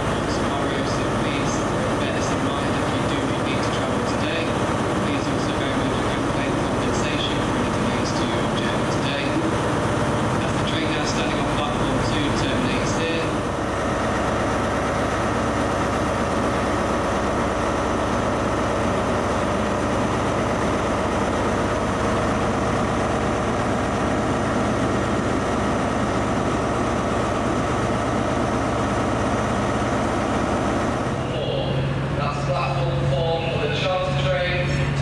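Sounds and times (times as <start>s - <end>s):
diesel locomotive idling: 0.0s - 35.0s.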